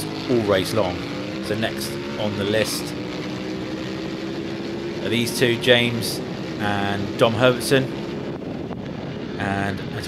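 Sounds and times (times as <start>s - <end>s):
motorcycle engine at high revs: 0.0s - 9.9s.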